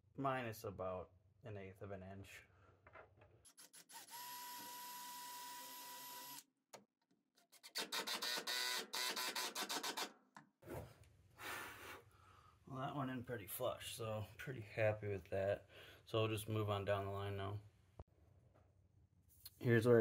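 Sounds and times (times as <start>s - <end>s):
cordless drill boring wood: 3.6s - 6.4s, 7.7s - 10.1s.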